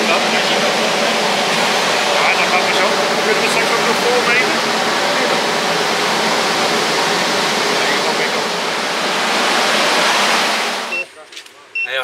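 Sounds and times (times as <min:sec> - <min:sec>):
fan air rushing: 0:00.0 - 0:11.8.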